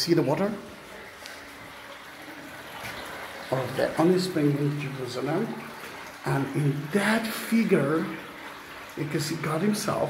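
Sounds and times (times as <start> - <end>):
spring water running: 0.0 - 10.0.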